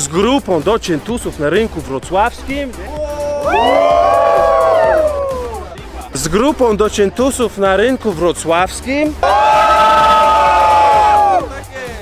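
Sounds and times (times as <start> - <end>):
crowd cheering: 3.2 - 5.7, 9.2 - 11.5.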